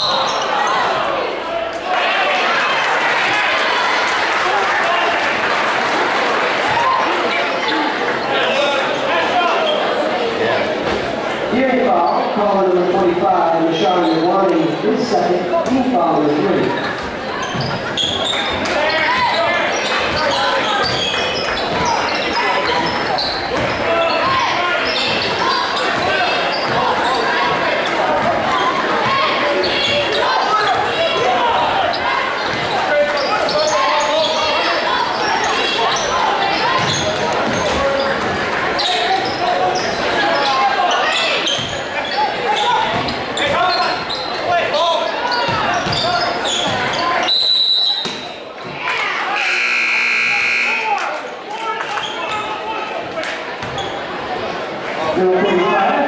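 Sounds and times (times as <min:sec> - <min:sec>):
crowd chatter: 0:00.0 - 0:56.0
basketballs bouncing on hardwood: 0:23.5 - 0:24.4
scoreboard buzzer: 0:49.4 - 0:51.0.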